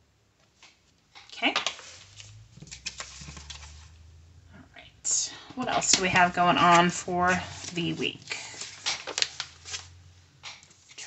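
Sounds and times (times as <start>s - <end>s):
woman speaking softly: 1.4s - 1.6s, 4.6s - 8.4s.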